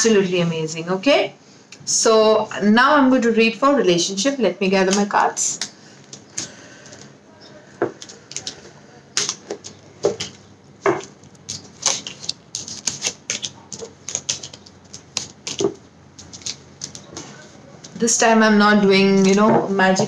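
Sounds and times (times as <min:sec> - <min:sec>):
cards shuffled and tapped on table: 0:07.8 - 0:18.0.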